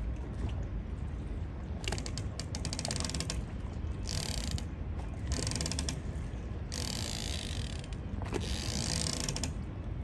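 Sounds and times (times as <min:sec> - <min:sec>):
steady low rumble: 0:00.0 - 0:06.8, 0:09.4 - 0:10.0.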